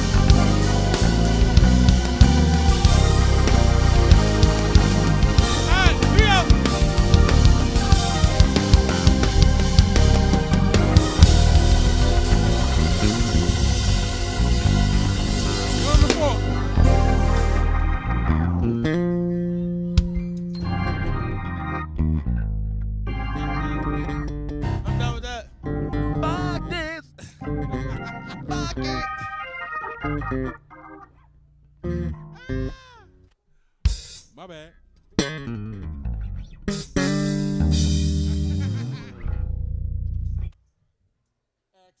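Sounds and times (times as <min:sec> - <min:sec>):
electric bass long low note: 0:00.0 - 0:20.0, 0:20.7 - 0:29.1, 0:35.4 - 0:40.5
sustained organ-like chords: 0:00.0 - 0:32.7, 0:35.4 - 0:40.5
faint voice: 0:32.4 - 0:33.1.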